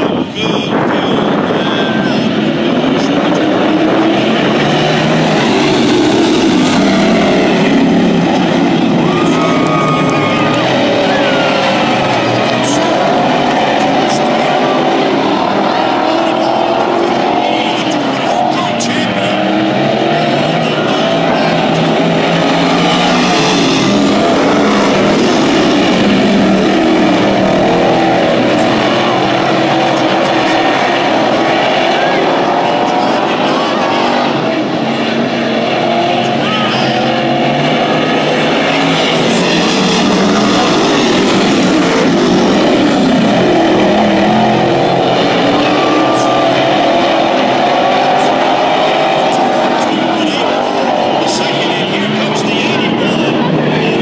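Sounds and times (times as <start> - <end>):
race car engines at full throttle: 0.0 - 54.0.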